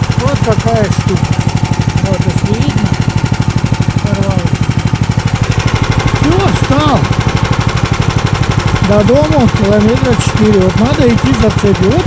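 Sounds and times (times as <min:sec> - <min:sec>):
small engine idling: 0:00.0 - 0:12.0.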